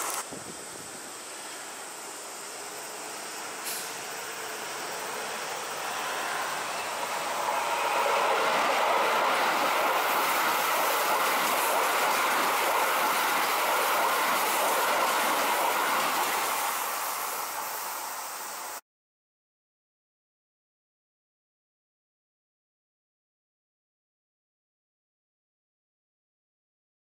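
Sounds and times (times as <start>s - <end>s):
electric train passing: 0.0s - 18.8s.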